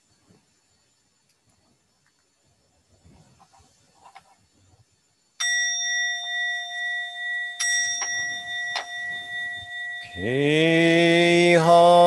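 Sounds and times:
temple bell ringing: 5.4 - 12.0.

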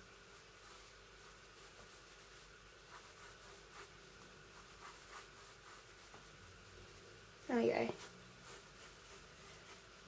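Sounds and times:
low hiss: 0.0 - 10.0
pencil scratching on paper: 0.6 - 6.4, 7.9 - 10.0.

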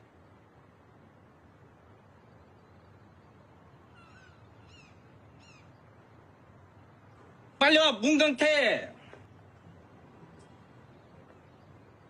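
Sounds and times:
faint outdoor ambience: 0.0 - 12.0
small bird chirping: 2.2 - 6.2.

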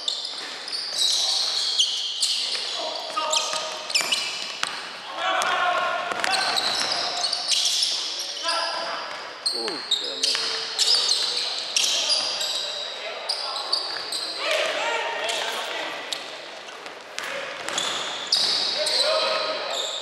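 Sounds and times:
sneakers squeaking on hardwood floor: 0.0 - 5.0, 6.1 - 14.7, 15.3 - 20.0.

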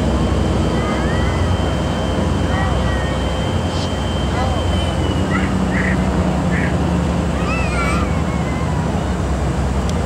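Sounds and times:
diesel engines rumbling: 0.0 - 10.0.

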